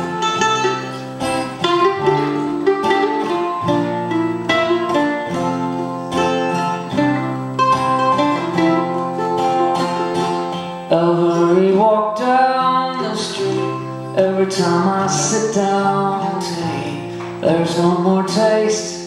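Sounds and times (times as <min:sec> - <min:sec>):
picked mandolin notes: 0:00.0 - 0:19.0
strummed acoustic guitar chords: 0:00.0 - 0:19.0.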